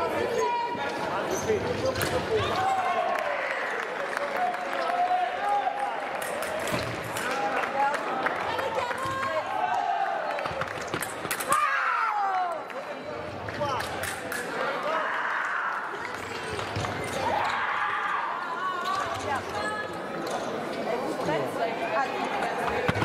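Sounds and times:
voices in a hall: 0.0s - 23.0s
fencing blades clicking: 13.8s - 14.6s.

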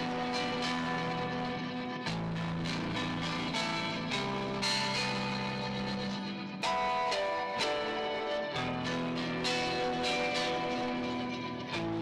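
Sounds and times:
electric guitar music: 0.0s - 12.0s.

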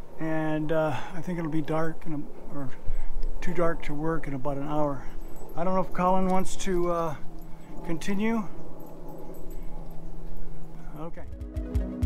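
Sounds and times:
steady low hum: 0.0s - 11.3s.

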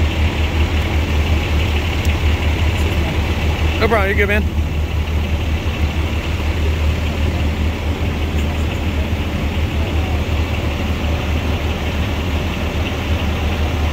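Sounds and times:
fire engines idling: 0.0s - 13.9s.

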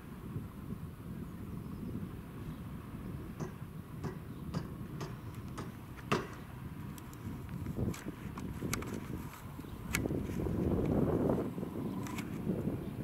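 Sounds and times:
wind rumble on microphone: 0.0s - 13.0s
sharp clicks: 3.4s - 11.0s, 12.0s - 12.4s.

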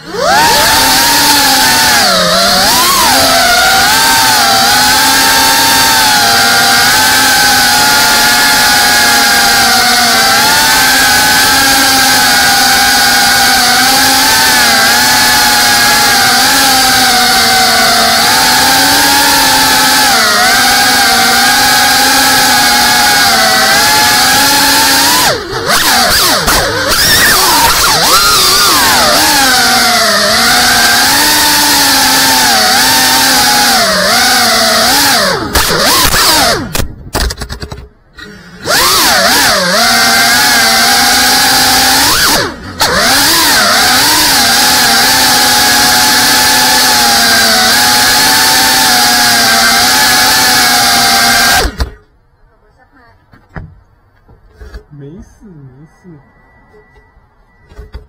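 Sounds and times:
drone motors and propellers whining: 0.0s - 52.1s.

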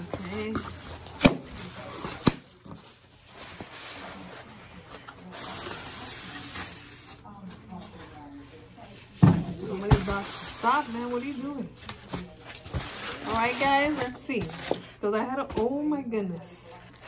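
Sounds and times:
cardboard scraping and rustling: 0.0s - 14.9s.

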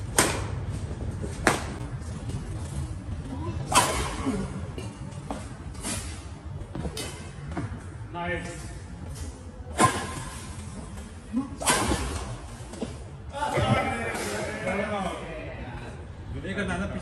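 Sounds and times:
rackets hitting shuttlecock: 0.0s - 0.6s, 11.6s - 12.5s.

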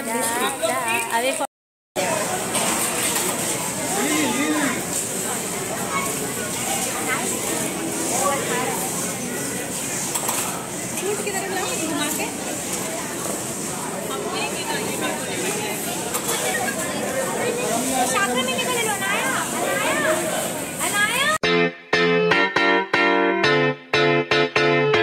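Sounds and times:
crowd chatter: 0.0s - 21.4s.

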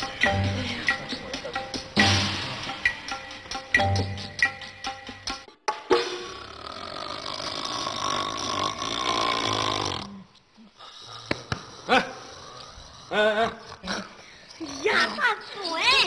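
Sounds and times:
man snoring loudly: 6.2s - 15.2s.

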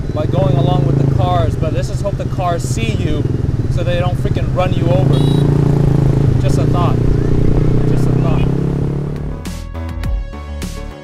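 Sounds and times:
motorcycle engine running: 0.0s - 9.6s
electronic music with steady beat: 9.2s - 11.0s.

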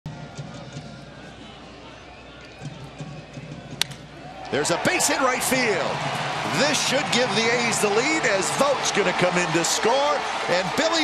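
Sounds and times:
crowd chatter: 0.1s - 11.0s.

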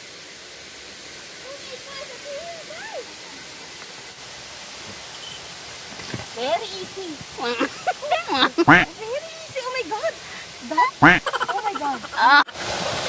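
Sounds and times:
steady rushing hiss: 0.0s - 13.0s.

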